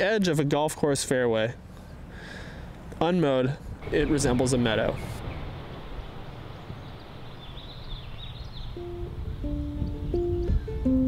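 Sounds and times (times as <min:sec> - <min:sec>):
faint high bird chirps: 0:04.9 - 0:10.8.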